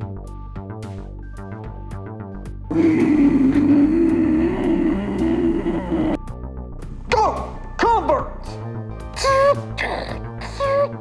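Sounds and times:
cartoon soundtrack music: 1.4s - 11.0s.

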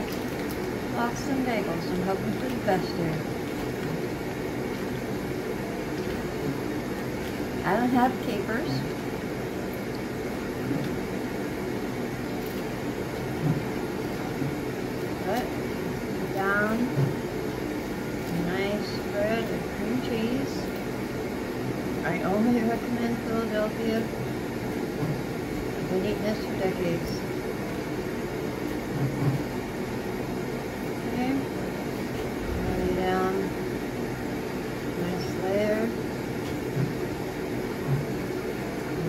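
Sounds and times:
steady background hum: 0.0s - 39.0s.

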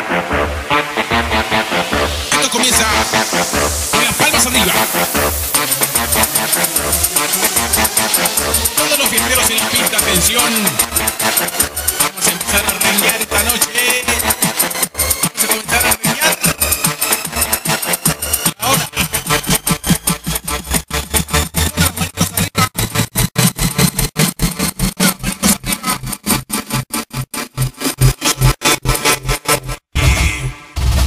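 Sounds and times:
rising synth sweep: 0.0s - 29.8s
electronic dance music beat: 0.0s - 31.0s.

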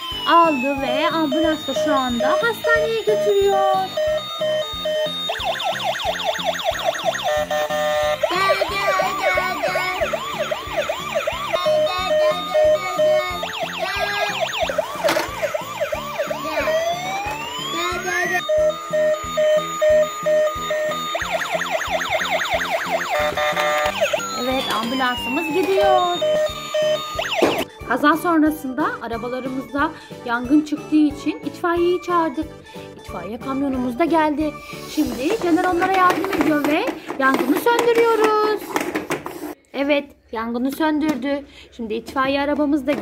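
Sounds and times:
electronic tune with steady beat: 0.0s - 27.7s
toy siren wails and yelps: 0.0s - 27.7s.

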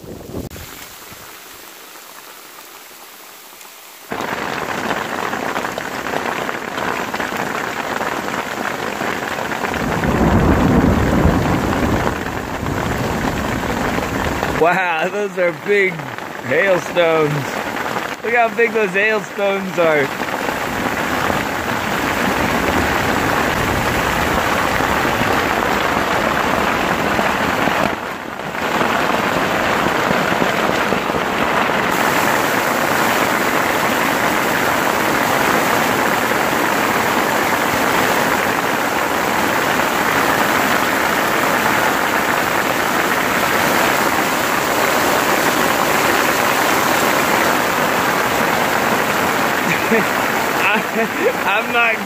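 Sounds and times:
hailstones falling on leaves: 0.5s - 52.0s.

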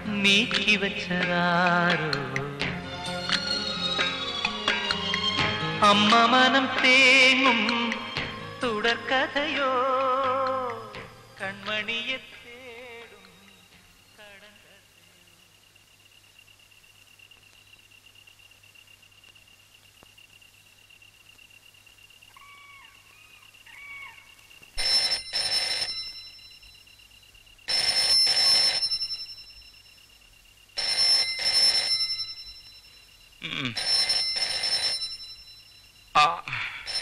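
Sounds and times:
telephone ringing: 24.8s - 30.2s, 30.8s - 37.0s.

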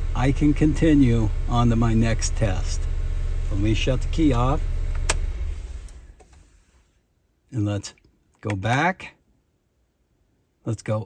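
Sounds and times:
car engine idling and stopping: 0.0s - 6.6s
ignition key click: 4.2s - 6.4s.

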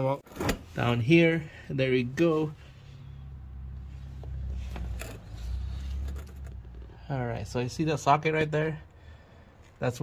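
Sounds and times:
faint clicks and scrapes: 3.9s - 7.0s.

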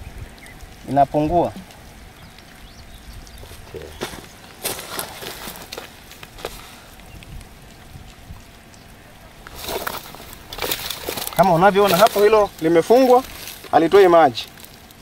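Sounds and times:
faint water hiss: 0.0s - 15.0s
clicks and rustles: 3.2s - 15.0s.

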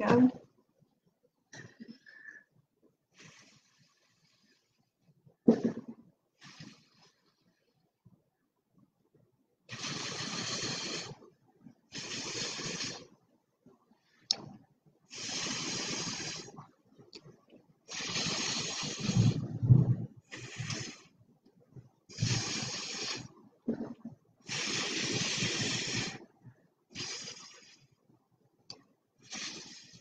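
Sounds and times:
breath blown through straw: 9.7s - 11.3s, 11.9s - 13.1s, 15.1s - 16.6s, 17.9s - 21.2s, 22.1s - 23.3s, 24.4s - 26.3s, 26.9s - 27.9s, 29.2s - 30.0s.

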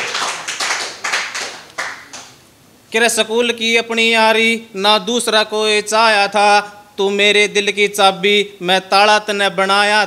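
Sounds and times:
audience applause: 0.0s - 2.3s.

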